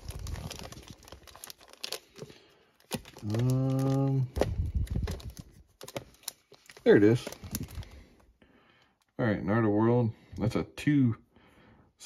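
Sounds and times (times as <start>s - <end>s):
plastic cd cases clacking: 0.0s - 7.8s.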